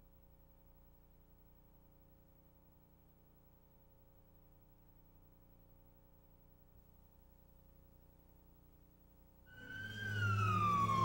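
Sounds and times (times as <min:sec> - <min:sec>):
low hum: 0:00.0 - 0:11.0
police siren winding down: 0:09.5 - 0:11.0.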